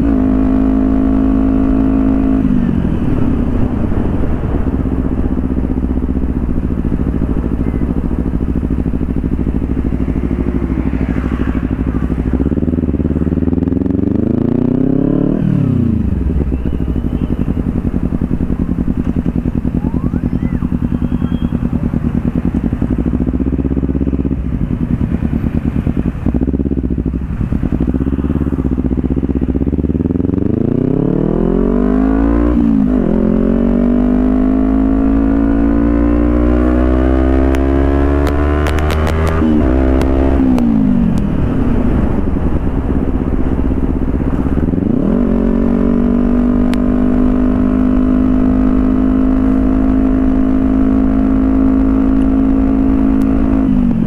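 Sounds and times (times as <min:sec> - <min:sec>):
motorcycle engine revving: 0:00.0 - 0:54.0.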